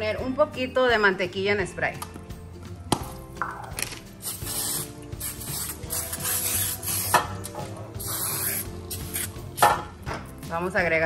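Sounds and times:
aerosol spray hissing: 4.2 - 7.3, 8.0 - 9.5.

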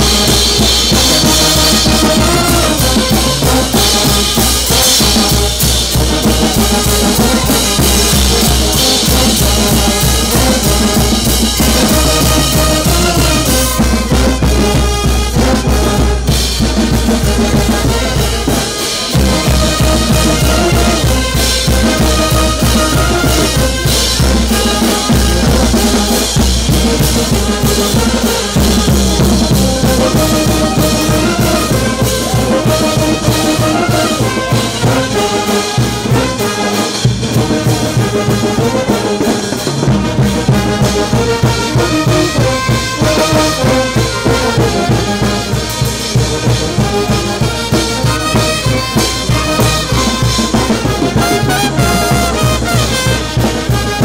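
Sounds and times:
brass band playing: 0.0 - 54.0
bass drum beat: 48.0 - 53.1.

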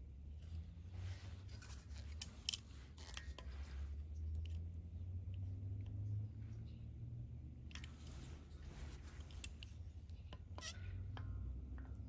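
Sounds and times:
low steady hum: 0.0 - 12.0
metal caliper clicking and scraping: 1.5 - 4.7, 7.7 - 8.2, 9.2 - 12.0.

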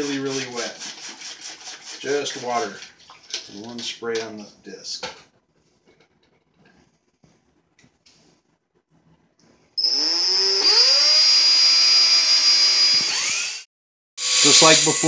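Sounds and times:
cordless drill motor whine: 9.8 - 14.6.

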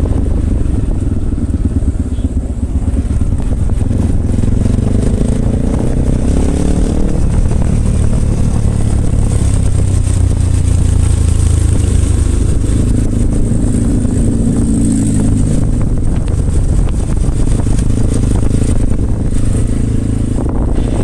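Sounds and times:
motorcycle engine running: 0.0 - 21.0
wind and road noise rumble: 0.0 - 21.0.

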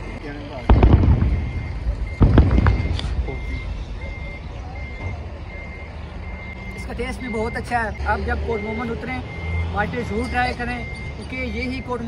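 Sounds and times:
sharp crackles: 0.0 - 6.7
low engine rumble: 0.0 - 12.0
reversing alarm beeping: 0.0 - 12.0.

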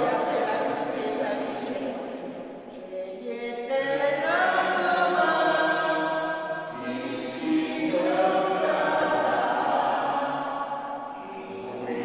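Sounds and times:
voices singing a slow hymn: 0.0 - 12.0.

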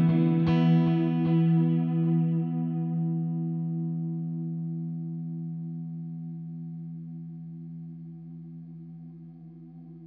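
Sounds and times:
electric guitar chord with delay: 0.0 - 5.4.

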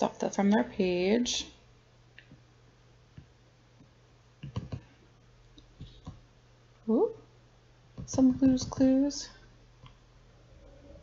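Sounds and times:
low steady hum: 0.0 - 11.0
computer mouse clicks: 4.4 - 4.9.

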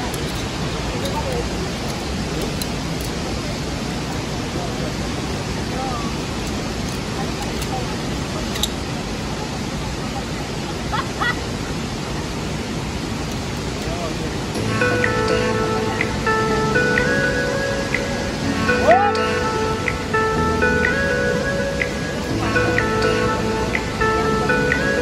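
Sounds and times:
steady rushing hiss: 0.0 - 25.0
background music with sustained chords: 14.3 - 25.0.

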